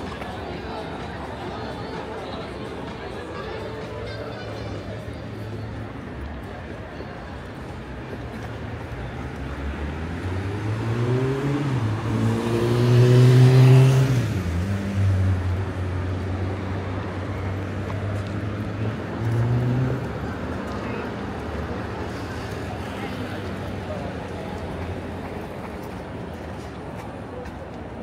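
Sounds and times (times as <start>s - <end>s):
traffic engine hum: 0.0s - 28.0s
car engine accelerating past: 9.8s - 15.6s.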